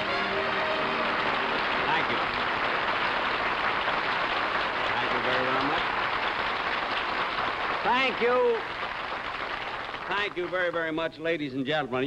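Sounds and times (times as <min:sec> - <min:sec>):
studio audience applauding: 0:00.0 - 0:11.3.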